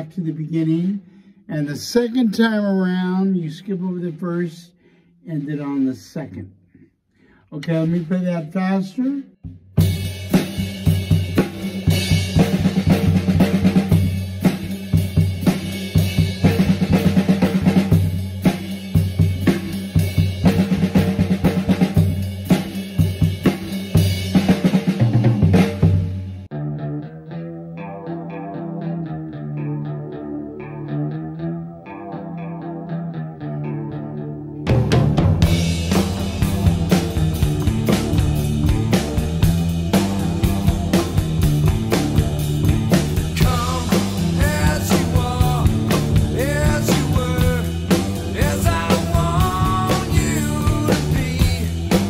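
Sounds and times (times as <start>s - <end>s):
drum kit playing: 5.3s - 6.4s, 7.6s - 26.6s, 34.6s - 52.0s
recorded guitar riff: 9.8s - 52.0s.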